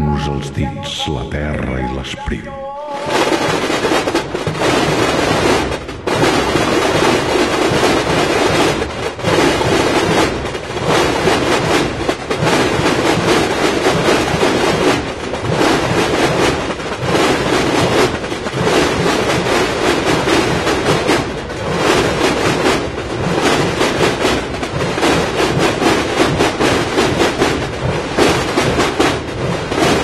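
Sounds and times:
massed snare and bass drums: 0:03.1 - 0:30.0.

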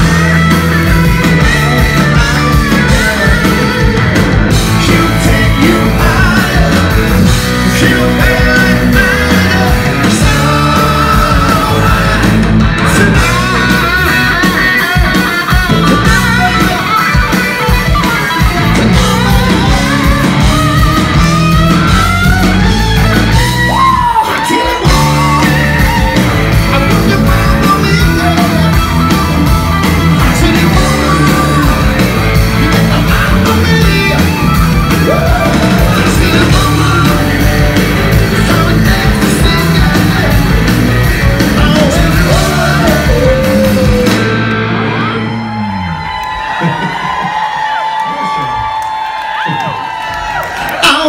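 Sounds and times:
crowd cheering and whooping: 0:00.0 - 0:51.0
live rock band playing: 0:00.0 - 0:51.0.

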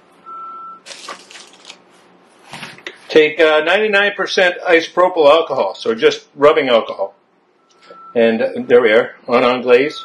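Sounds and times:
short steady beep: 0:00.2 - 0:00.8, 0:07.6 - 0:08.9
rustling and scratching: 0:00.9 - 0:03.2.

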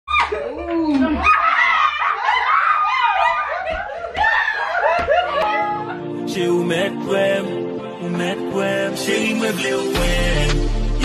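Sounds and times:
group of people laughing: 0:00.1 - 0:06.2.

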